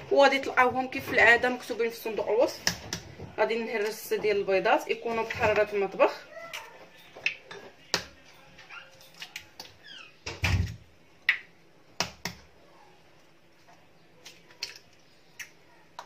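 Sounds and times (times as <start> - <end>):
eggs cracking on bowl: 11.2 - 12.5, 14.2 - 16.0.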